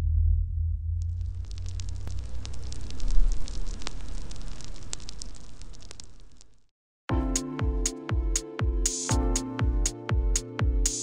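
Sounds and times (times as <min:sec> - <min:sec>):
deep rumble: 0:00.0 - 0:04.8
fire crackling: 0:01.0 - 0:06.7.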